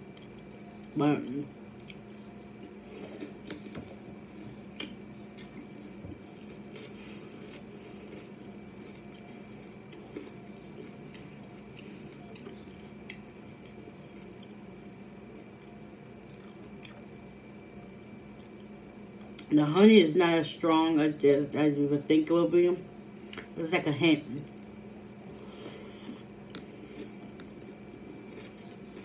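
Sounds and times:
wet chewing of cereal: 0.0s - 19.5s, 24.4s - 29.0s
faint steady hum: 0.0s - 29.0s.

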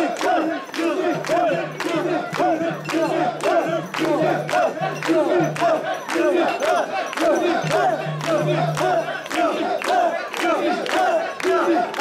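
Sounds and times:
crowd chanting in rhythm: 0.0s - 12.0s
sharp rhythmic clicks: 0.0s - 12.0s.

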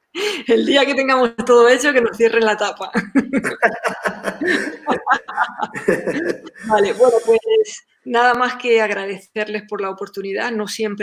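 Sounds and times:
man and woman chuckling: 3.0s - 7.4s.

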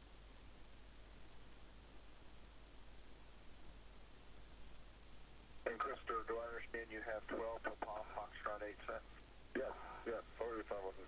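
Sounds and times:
voice over radio link: 5.7s - 11.0s.

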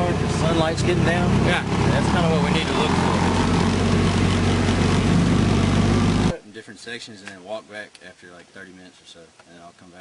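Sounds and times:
vehicle engine droning: 0.0s - 6.4s.

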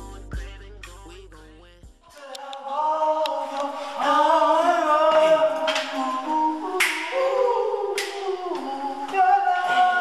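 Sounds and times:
choir-like sung chords: 0.0s - 10.0s
finger snaps: 6.8s - 7.2s, 8.0s - 8.7s.

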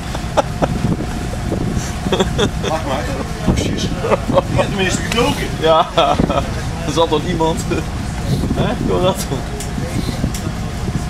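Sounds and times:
boat engine droning: 0.0s - 11.0s
voices: 0.0s - 11.0s.

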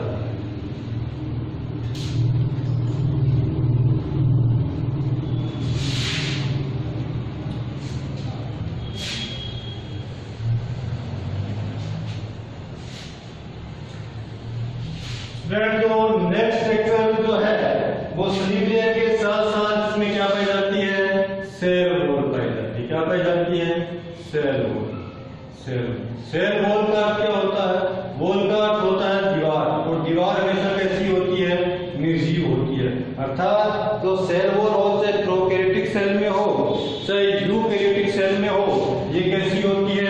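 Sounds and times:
low engine-like rumble: 0.0s - 15.5s
short hiss: 5.6s - 6.6s, 8.9s - 9.6s.

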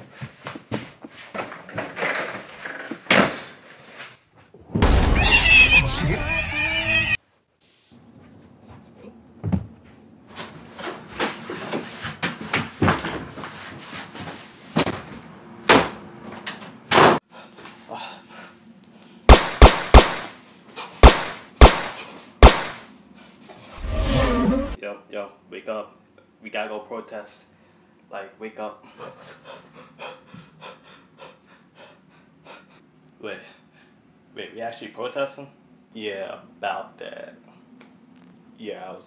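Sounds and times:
sharp gunshot-like bangs: 19.3s - 20.4s, 21.0s - 22.8s
horse whinny: 23.8s - 24.8s.

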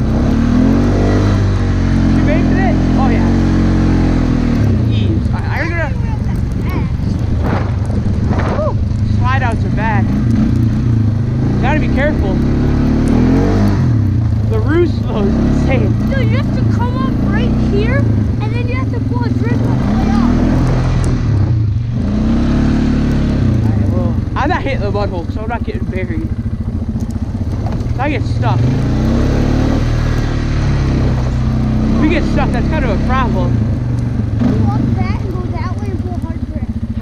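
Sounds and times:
atv engine revving: 0.0s - 37.0s.

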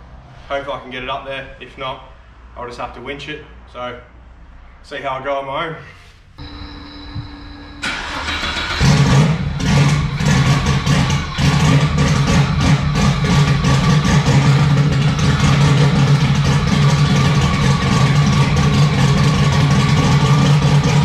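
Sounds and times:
brief whine: 6.4s - 9.4s
car engine idling: 6.4s - 21.0s
starter cranking: 7.8s - 21.0s.

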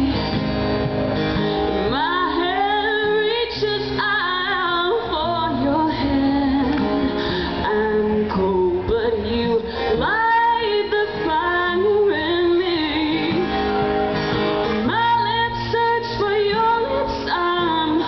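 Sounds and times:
woman singing: 0.0s - 0.5s, 1.7s - 14.0s, 14.6s - 18.0s
strummed acoustic guitar: 0.0s - 18.0s.

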